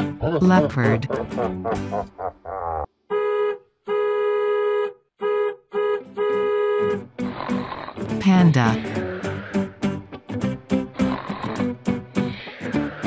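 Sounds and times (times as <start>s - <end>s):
person laughing: 0.2s - 2.9s.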